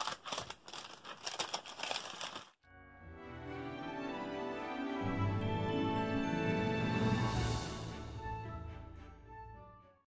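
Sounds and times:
paper and card rustling: 0.0s - 2.6s
soft background music: 2.7s - 10.0s.

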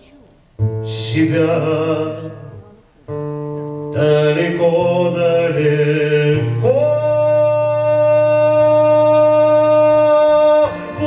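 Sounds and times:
acoustic guitar: 0.0s - 11.0s
man singing a long note: 3.9s - 11.0s.

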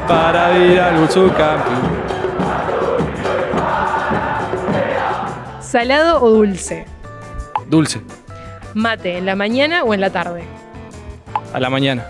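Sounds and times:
crowd chanting: 0.0s - 6.7s
background music: 0.0s - 12.0s.

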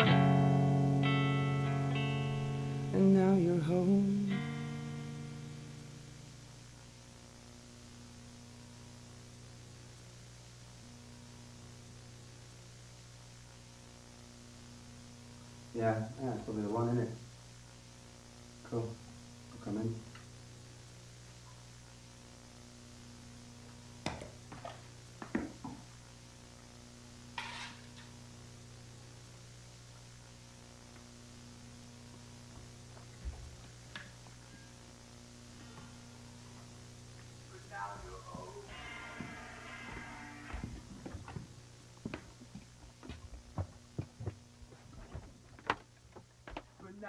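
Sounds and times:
steady electrical hum: 0.0s - 47.0s.

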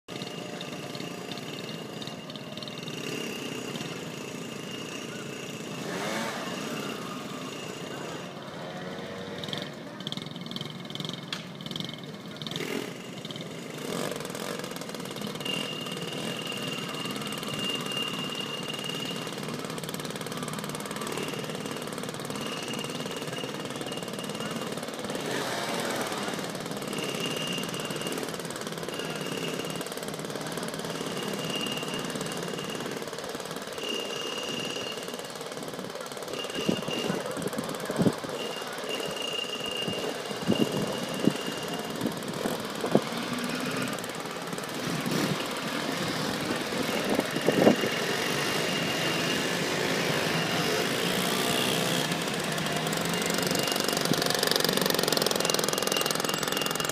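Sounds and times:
mopeds idling and revving: 0.0s - 56.9s
mopeds riding past: 0.1s - 56.9s.

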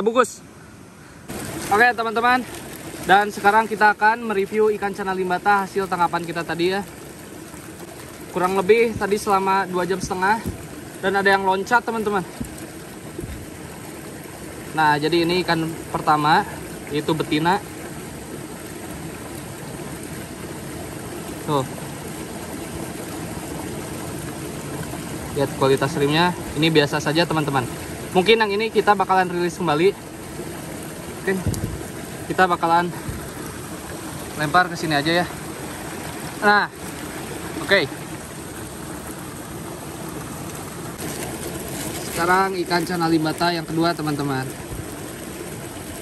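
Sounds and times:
running water rushing: 0.0s - 46.0s
stream trickling over stones: 0.8s - 46.0s.

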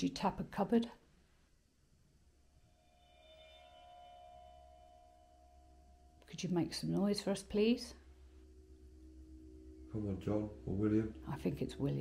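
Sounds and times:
faint steady ringing tone: 1.0s - 12.0s.

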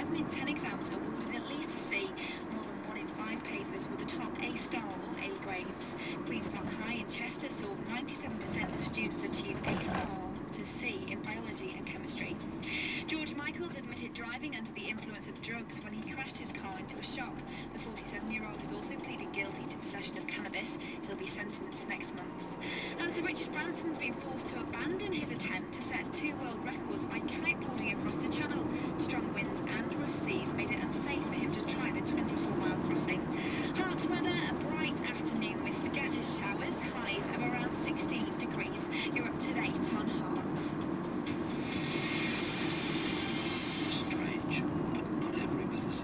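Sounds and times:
voice from car radio: 0.0s - 40.8s, 42.0s - 46.0s
road noise: 0.0s - 46.0s
car engine: 3.6s - 13.1s, 39.6s - 46.0s.

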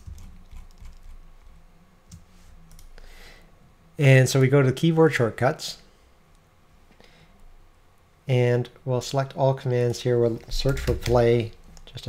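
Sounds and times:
computer keyboard clicks: 0.0s - 1.1s.

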